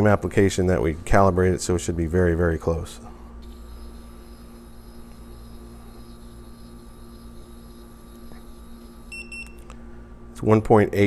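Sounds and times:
faint steady electric motor hum: 0:00.0 - 0:11.0.

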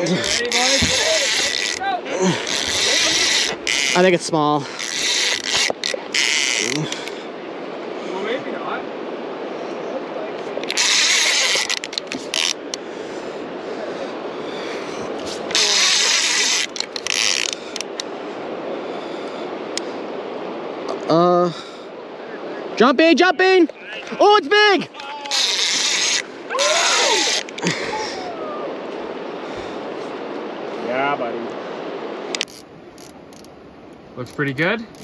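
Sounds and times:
fishing reel mechanism bursts: 0:10.6 - 0:12.6.

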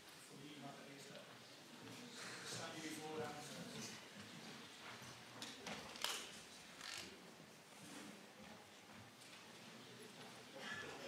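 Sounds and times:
crowd murmur in a hall: 0:00.0 - 0:11.0.

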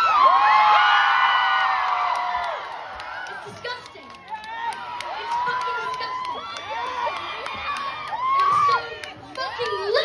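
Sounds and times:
audience cheering and screaming: 0:00.0 - 0:10.0
crowd noise: 0:00.0 - 0:10.0.

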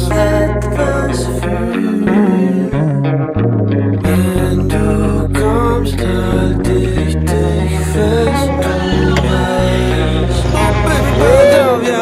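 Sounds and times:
bass guitar line: 0:00.0 - 0:12.0
guitar: 0:00.0 - 0:12.0.

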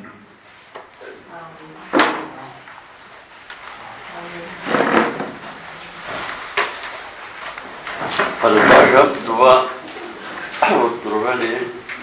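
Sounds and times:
room noise: 0:00.0 - 0:12.0
person speaking: 0:03.7 - 0:06.4.

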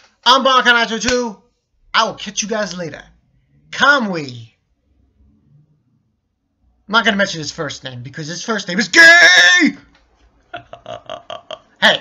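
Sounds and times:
man laughing: 0:10.5 - 0:12.0.

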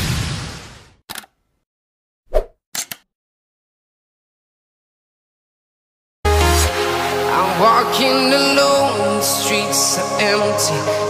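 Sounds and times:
quick clicks: 0:01.1 - 0:01.4, 0:02.8 - 0:03.1.

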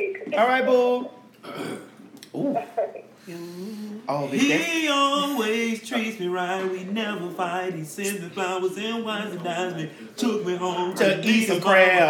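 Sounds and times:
person burping: 0:01.4 - 0:02.0.

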